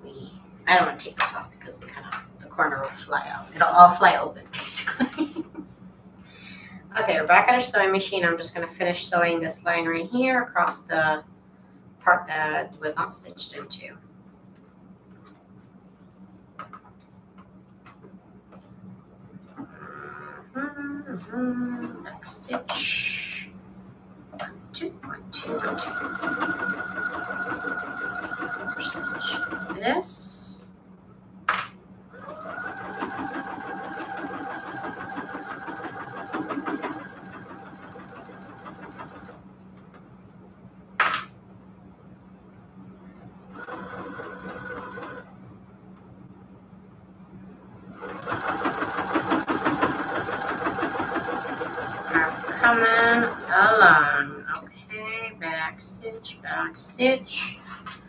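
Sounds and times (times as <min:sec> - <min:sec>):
sewing machine stitching: 0:25.0 - 0:29.8, 0:32.2 - 0:39.4, 0:43.6 - 0:45.3, 0:47.9 - 0:53.5.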